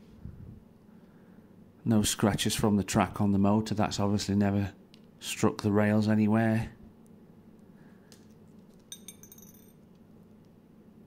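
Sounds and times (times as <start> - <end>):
low steady room hum: 0.0 - 11.0
light metallic clink: 8.7 - 9.8.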